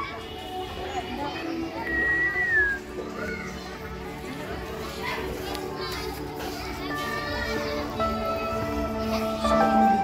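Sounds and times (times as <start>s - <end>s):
background music: 0.0s - 10.0s
children chattering and calling out: 0.0s - 10.0s.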